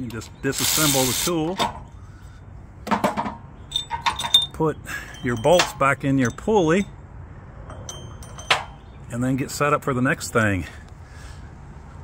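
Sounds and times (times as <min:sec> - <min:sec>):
faint metal ring: 0:03.6 - 0:06.9, 0:07.6 - 0:09.0.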